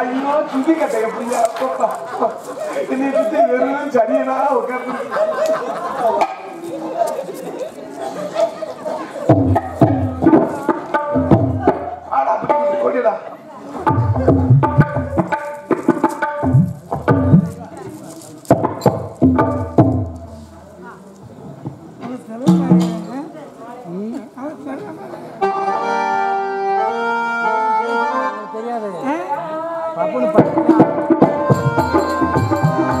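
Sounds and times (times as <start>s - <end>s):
man's voice through a microphone: 0.0s - 7.9s, 11.6s - 15.0s
hand drum strokes: 9.3s - 12.6s, 13.8s - 20.6s, 22.4s - 23.3s
harmonium melody: 25.4s - 29.2s, 30.6s - 33.0s.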